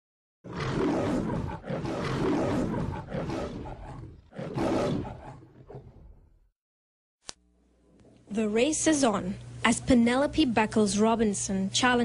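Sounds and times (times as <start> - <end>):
loud roar bursts: 0.5 - 5.8.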